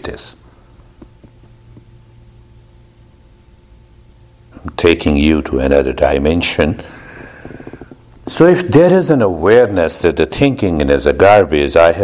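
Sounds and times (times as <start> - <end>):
low background hum: 0.0 - 12.0
person speaking: 8.2 - 12.0.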